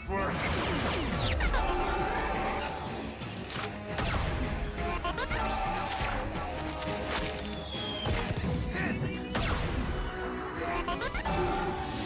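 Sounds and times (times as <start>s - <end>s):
cartoon action music: 0.0s - 3.0s, 8.0s - 12.0s.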